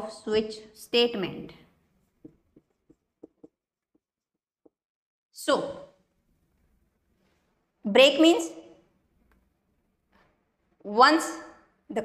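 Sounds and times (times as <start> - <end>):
woman speaking: 0.0 - 1.6, 10.8 - 12.0.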